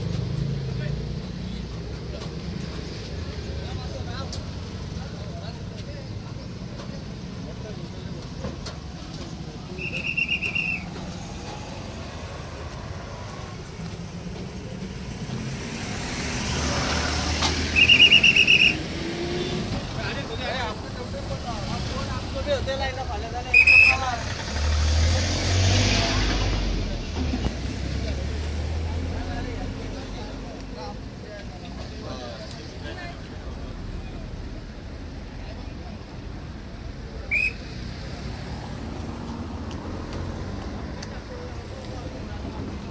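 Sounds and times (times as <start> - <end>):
passing road traffic: 0.0 - 42.9
police whistle trilled blasts: 9.8 - 10.9, 17.7 - 18.8, 23.5 - 24.0, 37.3 - 37.7
heavy vehicle rumbling past: 10.8 - 23.4, 24.0 - 30.6.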